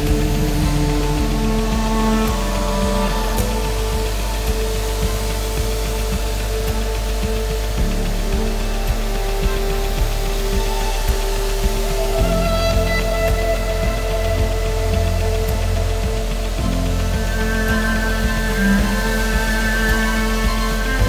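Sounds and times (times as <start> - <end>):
background music with steady beat: 0.0 - 21.0.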